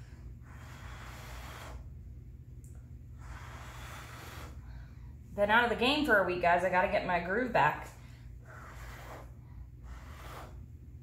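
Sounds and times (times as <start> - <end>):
person blowing hard by mouth: 0.0 - 2.0, 3.2 - 4.8, 8.4 - 10.7
low hum: 0.0 - 11.0.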